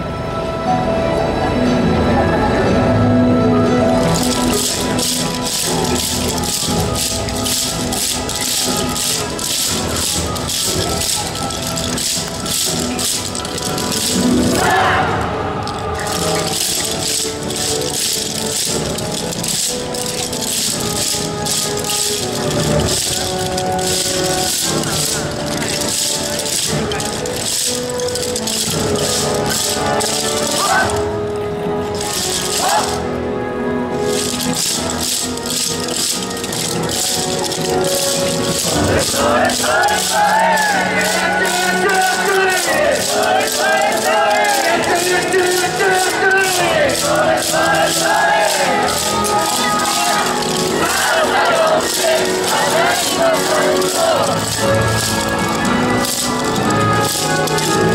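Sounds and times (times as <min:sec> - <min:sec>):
person singing: 0:01.9 - 0:31.0
dance music: 0:03.3 - 0:57.9
wooden clappers rattling: 0:03.8 - 0:57.9.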